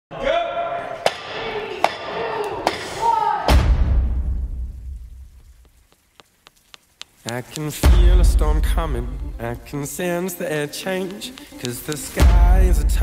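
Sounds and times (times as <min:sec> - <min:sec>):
deep booming hit: 0:03.5 - 0:05.2, 0:07.8 - 0:09.2
sharp clicks: 0:05.6 - 0:08.2, 0:11.0 - 0:12.4
person speaking: 0:05.9 - 0:13.0.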